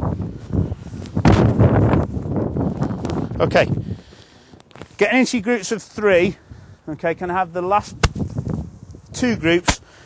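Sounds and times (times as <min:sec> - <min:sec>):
rough rumbling microphone noise: 0:00.0 - 0:05.2, 0:07.8 - 0:09.6.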